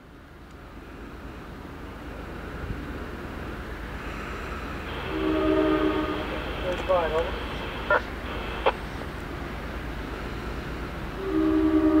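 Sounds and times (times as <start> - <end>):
diesel train rumbling: 0.0 - 12.0
train air horn: 4.9 - 6.4, 11.2 - 12.0.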